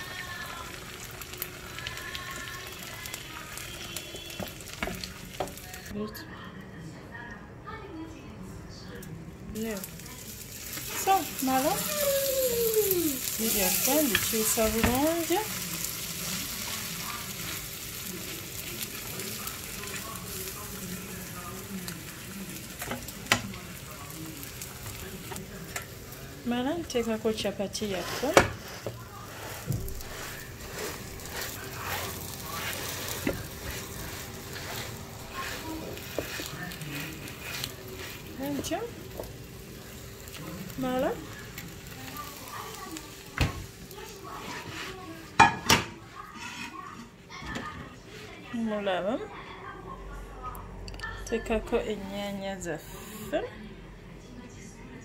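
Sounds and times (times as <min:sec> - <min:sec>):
eggs sizzling in oil: 0:00.0 - 0:06.0, 0:09.5 - 0:47.1.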